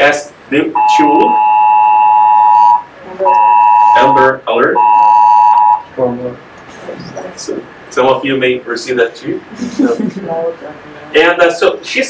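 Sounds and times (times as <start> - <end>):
phone emergency alert blare: 0.8 - 5.9.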